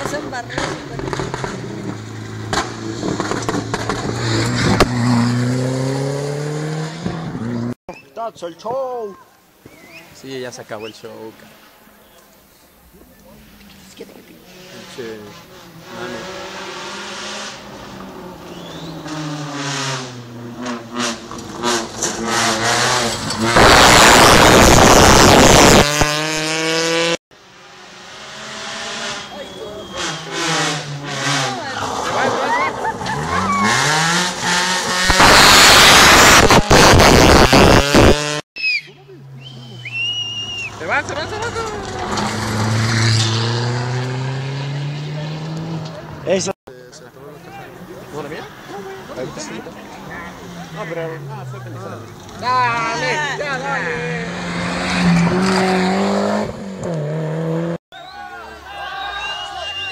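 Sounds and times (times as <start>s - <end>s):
rally car engines revving: 0.0s - 7.8s, 12.8s - 38.4s, 39.2s - 57.8s.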